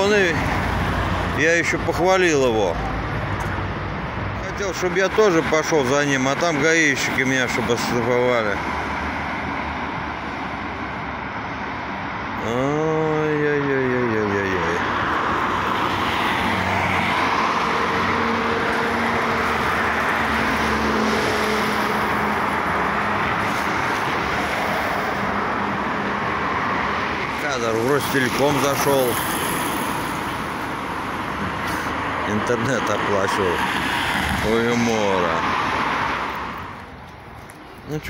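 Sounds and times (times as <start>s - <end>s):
cars and truck passing: 0.0s - 38.0s.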